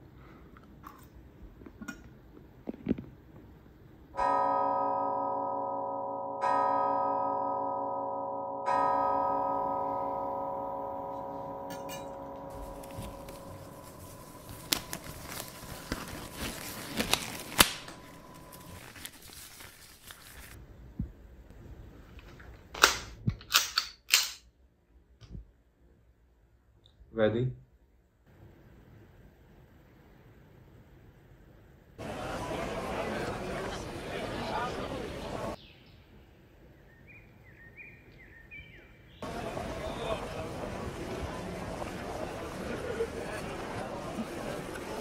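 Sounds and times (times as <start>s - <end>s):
deep bell ringing: 4.2s - 16.3s
pistol loading clicks: 22.7s - 24.5s.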